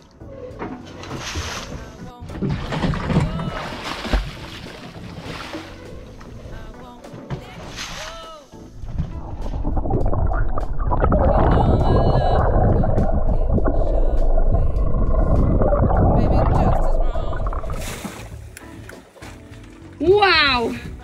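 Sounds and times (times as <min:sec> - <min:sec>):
muffled underwater rushing water: 0:08.6 - 0:18.5.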